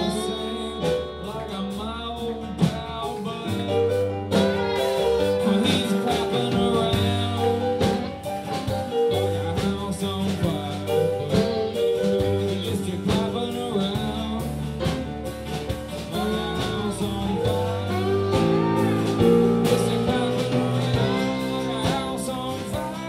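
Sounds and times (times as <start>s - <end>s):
live band playing: 0.0s - 23.0s.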